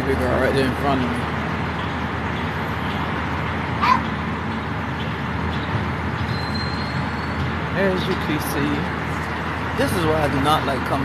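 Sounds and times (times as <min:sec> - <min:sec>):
vehicle road and engine rumble: 0:00.0 - 0:11.0.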